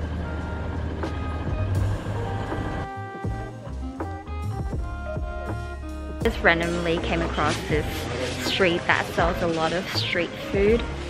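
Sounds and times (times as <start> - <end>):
diesel train rumble and rail noise: 0.0 - 4.1
background music: 0.0 - 11.0.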